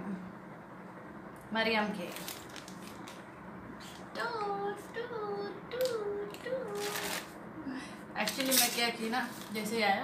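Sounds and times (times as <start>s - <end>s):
plastic packaging crinkling: 2.0s - 3.2s, 6.3s - 7.4s.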